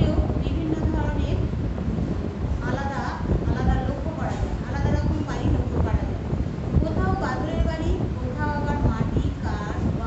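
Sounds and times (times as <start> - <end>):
woman speaking: 0.0 - 1.6, 2.5 - 10.0
steady low rumble: 0.0 - 10.0.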